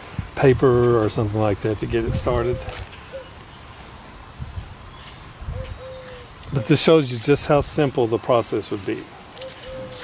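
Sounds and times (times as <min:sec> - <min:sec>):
wind buffeting microphone: 0:00.0 - 0:02.9, 0:04.2 - 0:06.7.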